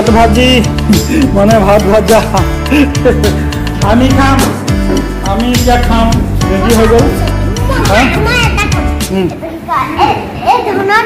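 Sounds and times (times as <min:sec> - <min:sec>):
young children talking: 0:06.4 - 0:11.0.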